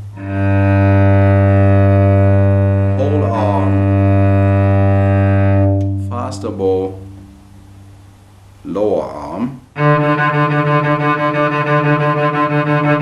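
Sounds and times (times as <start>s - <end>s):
cello sustained bowed note: 0.0s - 7.9s, 9.4s - 13.0s.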